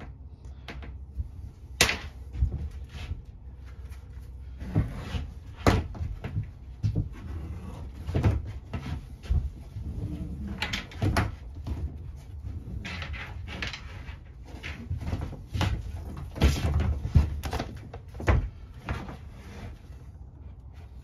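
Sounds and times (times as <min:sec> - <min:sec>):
cables knocking and scraping: 0:00.0 - 0:21.0.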